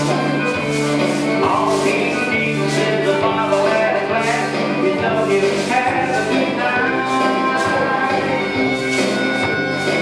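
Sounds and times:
song over loudspeakers: 0.0 - 10.0.

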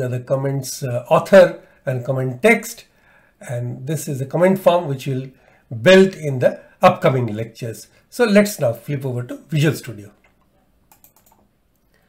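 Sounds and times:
faint computer clicks: 10.2 - 12.0.

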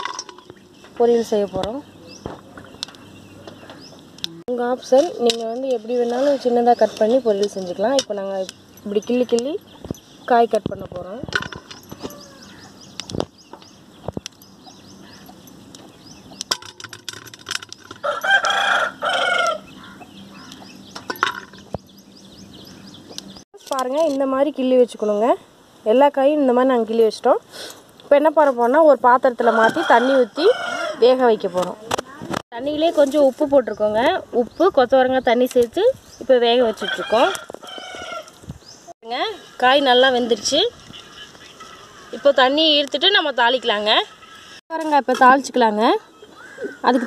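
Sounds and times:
rooster crowing: 11.9 - 12.7, 18.0 - 20.0, 29.4 - 31.5, 36.8 - 38.4.

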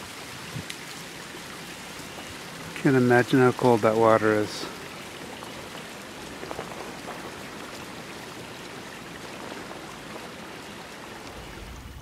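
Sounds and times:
creek water trickling over stones: 0.0 - 12.0.

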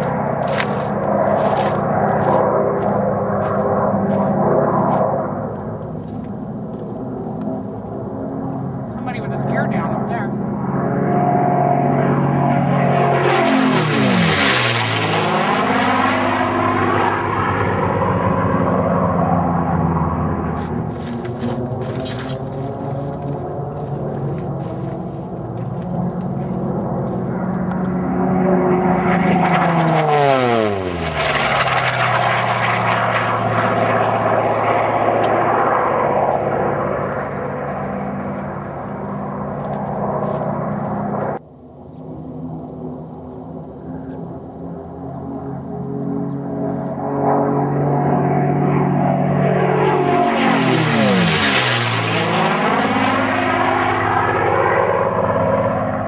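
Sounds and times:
aircraft engine drone: 0.0 - 56.0
racing planes passing low: 0.0 - 56.0.

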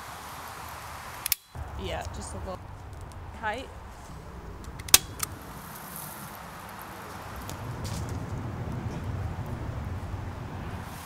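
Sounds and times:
low background rumble: 1.6 - 11.0
sharp clicks: 4.6 - 5.4.

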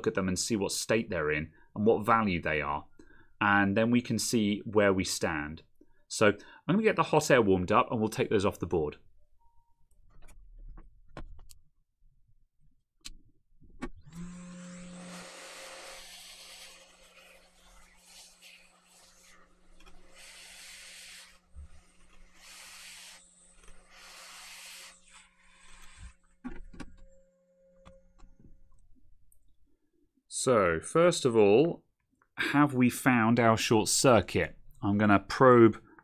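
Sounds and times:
hot air station hissing: 15.0 - 19.4, 20.0 - 26.0.

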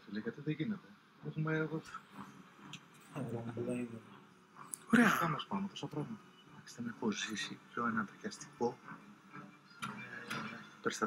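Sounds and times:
man speaking quietly: 3.1 - 4.1.

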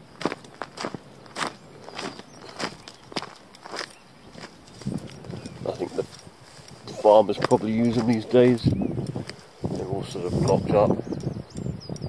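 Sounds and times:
footsteps on gravel: 0.0 - 10.8.

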